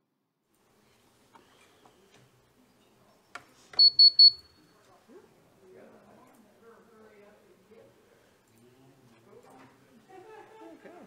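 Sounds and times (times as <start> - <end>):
short high-pitched electronic beeps: 3.8 - 4.6.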